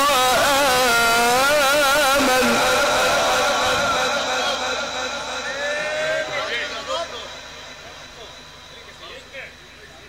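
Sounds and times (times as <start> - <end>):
man reciting melodically: 0.0 - 5.5.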